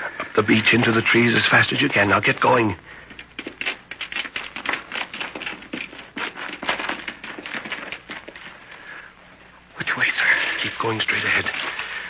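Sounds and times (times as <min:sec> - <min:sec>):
footsteps running through brush: 0:01.9 - 0:08.6.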